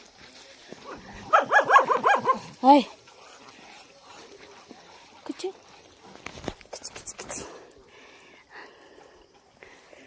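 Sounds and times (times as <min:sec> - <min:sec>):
dog yapping: 0:01.2 - 0:02.6.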